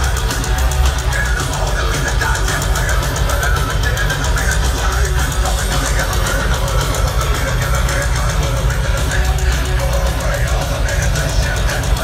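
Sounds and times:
live heavy metal band: 0:00.0 - 0:12.0.

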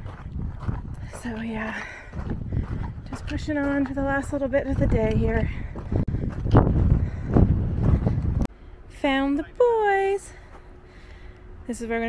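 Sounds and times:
footsteps on dirt trail: 0:00.0 - 0:08.5, 0:10.3 - 0:11.1
wind rumbling on microphone: 0:00.0 - 0:08.5
quiet outdoor background: 0:00.0 - 0:12.0.

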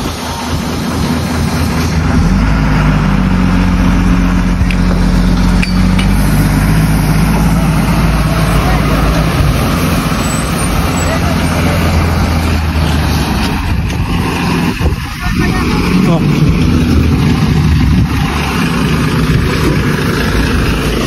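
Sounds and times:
diesel truck engine droning: 0:00.0 - 0:21.0.

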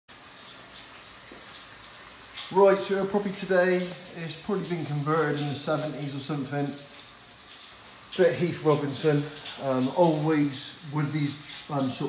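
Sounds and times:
water running from taps: 0:00.1 - 0:12.0.

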